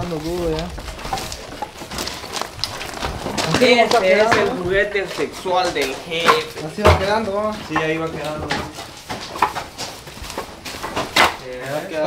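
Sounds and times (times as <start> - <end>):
firewood pieces clacking: 0.0 - 12.0.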